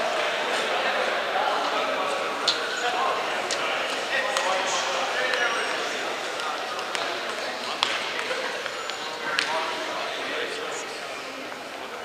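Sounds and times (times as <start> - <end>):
crowd chatter echoing: 0.0 - 12.0.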